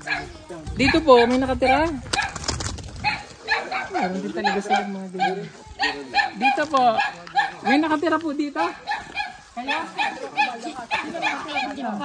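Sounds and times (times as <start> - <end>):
dog barking: 0.0 - 2.4, 3.0 - 7.9, 8.6 - 12.0.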